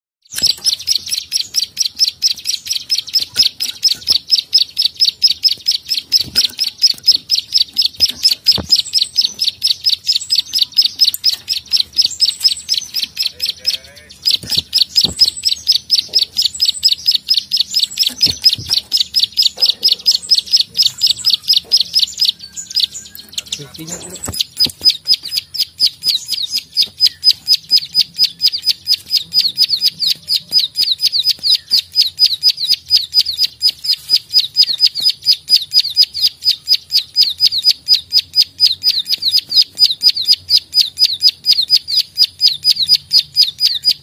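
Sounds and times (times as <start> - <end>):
bird clicking call: 0.3 - 44.0.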